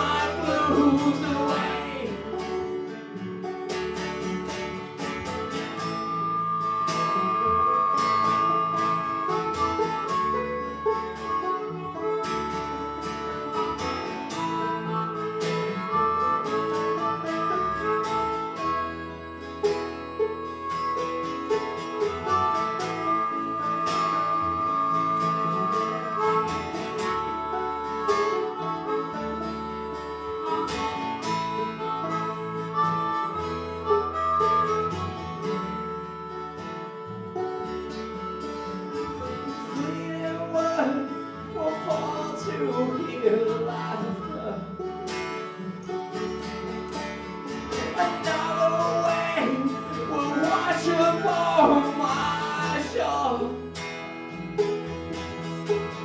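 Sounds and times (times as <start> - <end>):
acoustic guitar picking: 0.0 - 56.0
banjo picking: 0.0 - 56.0
harmonica playing held notes: 0.0 - 56.0.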